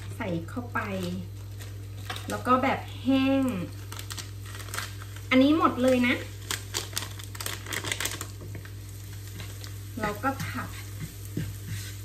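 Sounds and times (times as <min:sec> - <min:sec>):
chili paste sizzling in oil: 0:00.0 - 0:12.0
wooden spatula stirring: 0:07.7 - 0:12.0.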